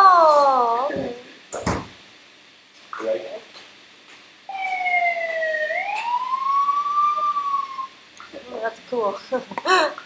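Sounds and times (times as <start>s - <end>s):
wailing siren sound effect: 4.5s - 8.0s.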